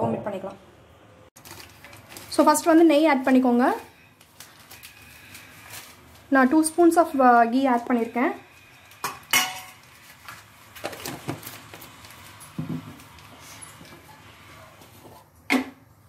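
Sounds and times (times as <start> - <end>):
metal spoon clinking on pot: 9.0 - 9.8.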